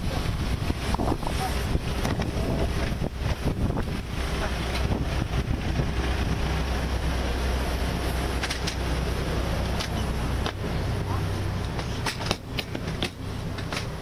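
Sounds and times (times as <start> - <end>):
idling engines rumble: 0.0 - 14.0
wind buffeting microphone: 0.0 - 14.0.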